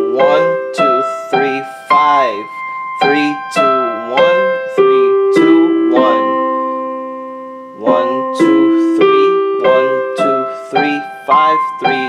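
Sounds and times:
digital piano arpeggio: 0:00.0 - 0:12.0.

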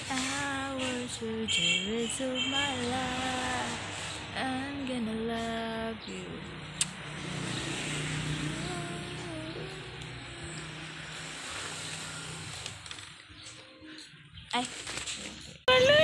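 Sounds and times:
low engine hum: 0:00.0 - 0:13.3.

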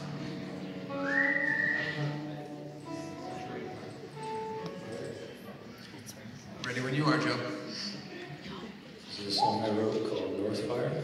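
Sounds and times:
murmur of audience voices: 0:00.0 - 0:11.0
person whistling loudly: 0:01.0 - 0:02.2.

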